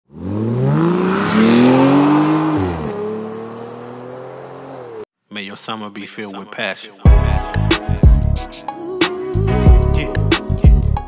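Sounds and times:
car engine revving: 0.1s - 5.1s.

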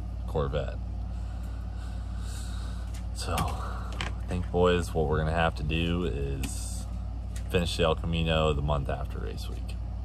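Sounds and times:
steady low hum: 0.0s - 10.0s
man speaking: 0.3s - 0.8s, 3.2s - 6.9s, 7.5s - 9.8s
man's sharp intake of breath: 1.1s - 2.9s.

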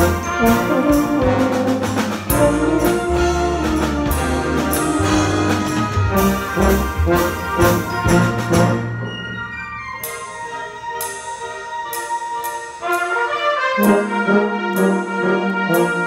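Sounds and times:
tuba playing low notes: 0.0s - 9.2s, 12.8s - 16.0s
concert band playing: 0.0s - 16.0s.

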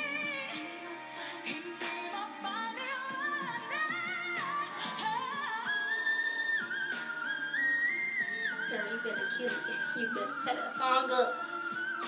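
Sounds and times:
backing music: 0.0s - 12.0s
woman singing high notes: 8.5s - 11.6s.

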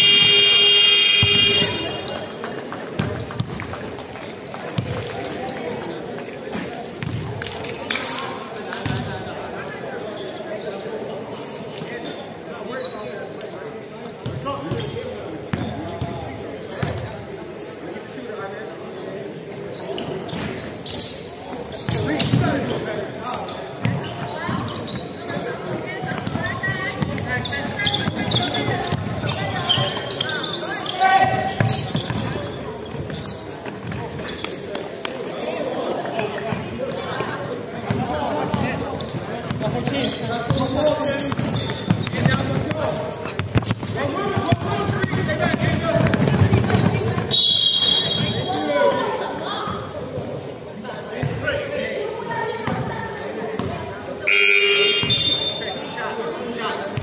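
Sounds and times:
players calling out: 0.0s - 2.5s, 52.7s - 57.0s
basketball bouncing: 1.0s - 2.0s, 7.0s - 7.3s, 26.0s - 30.0s, 31.2s - 33.2s, 41.3s - 47.3s.

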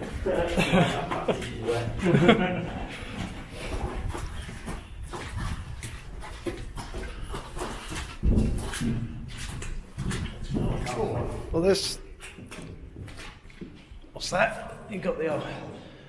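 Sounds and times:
footsteps of people walking: 0.0s - 14.2s.

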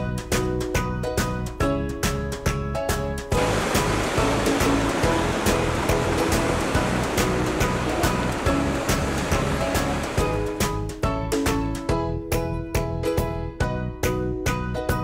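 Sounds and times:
music with steady beat: 0.0s - 15.0s
ocean waves washing: 3.3s - 10.8s.

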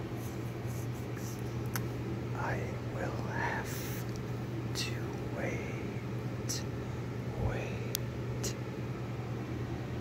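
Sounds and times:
slow whispering: 2.3s - 8.7s.

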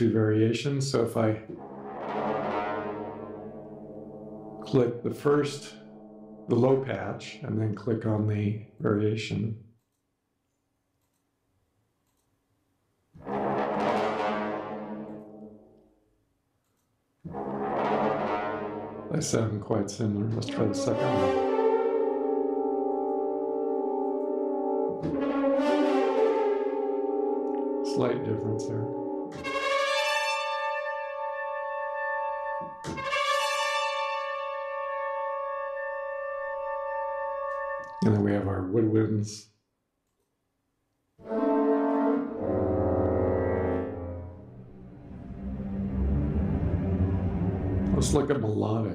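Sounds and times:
orchestral brass phrase: 1.0s - 7.1s, 13.2s - 15.7s, 17.3s - 38.9s, 41.2s - 48.8s.

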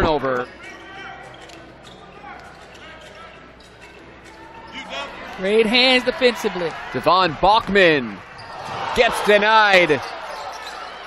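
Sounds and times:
faint arena voices: 0.0s - 11.0s
sneaker squeaks: 0.4s - 5.2s, 8.3s - 8.8s, 10.0s - 11.0s.

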